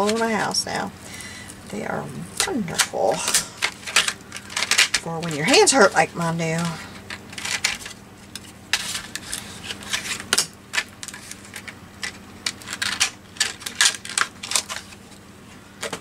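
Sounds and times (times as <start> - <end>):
plastic packaging clicking and crackling: 2.4 - 15.2, 15.8 - 16.0.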